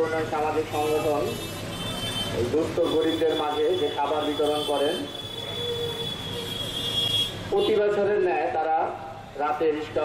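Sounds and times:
background hubbub: 0.0 - 10.0.

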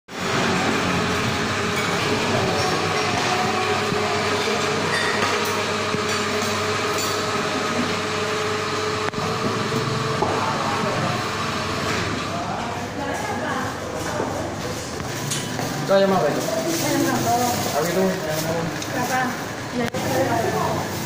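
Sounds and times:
mechanical hum with hiss: 0.1 - 21.0.

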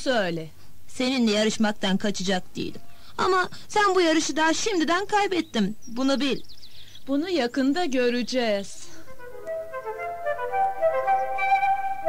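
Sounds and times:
flute playing slow melody: 9.1 - 12.0.

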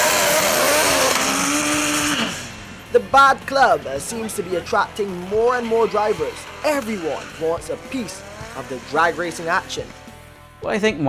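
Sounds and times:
drag racing cars accelerating: 0.0 - 10.6.

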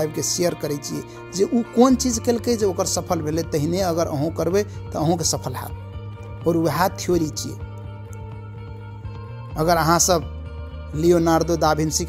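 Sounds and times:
background music: 0.0 - 12.0
man speaking: 6.4 - 7.6.

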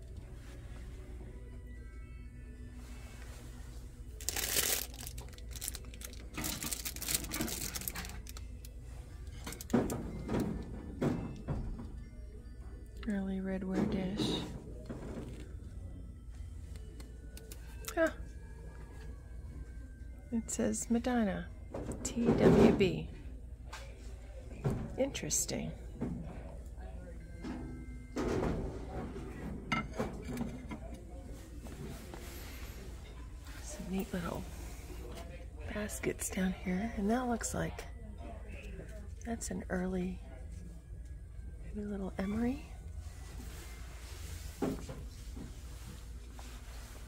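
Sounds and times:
low room hum: 0.0 - 47.0
rustling handling noise: 2.8 - 10.9, 43.0 - 47.0
woman speaking: 13.0 - 14.5, 17.9 - 18.2, 20.3 - 23.2, 25.0 - 25.8, 33.6 - 34.6, 35.7 - 37.9, 39.2 - 40.2, 41.8 - 42.8.

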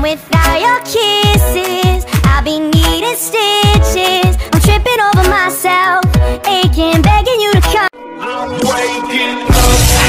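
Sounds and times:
electronic pop song: 0.0 - 10.0.

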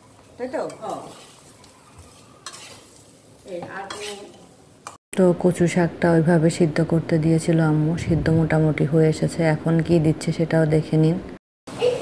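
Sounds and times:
meat sizzling: 0.0 - 5.0
spoon scraping pan: 0.0 - 5.0.

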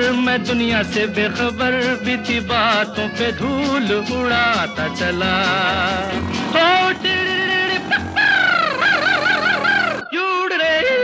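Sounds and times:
song music: 3.9 - 10.0
person yodeling: 6.9 - 10.2.

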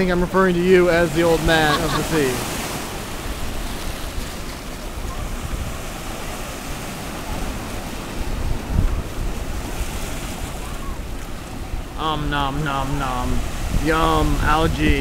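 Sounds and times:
wind buffeting microphone: 0.0 - 12.0, 12.7 - 15.0
surf washing over rocks: 0.0 - 15.0.

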